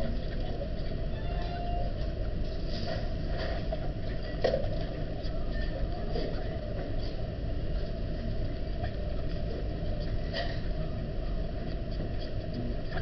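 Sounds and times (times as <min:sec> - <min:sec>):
low room noise rumble: 0:00.0 - 0:13.0.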